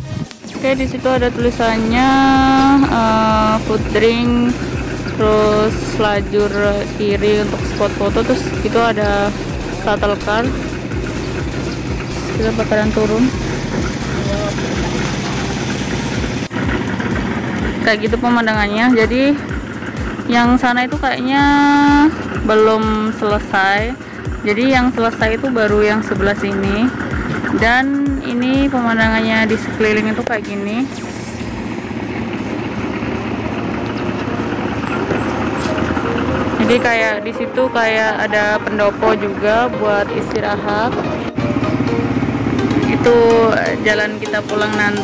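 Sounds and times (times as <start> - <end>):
construction machinery engine running: 0.0 - 45.0.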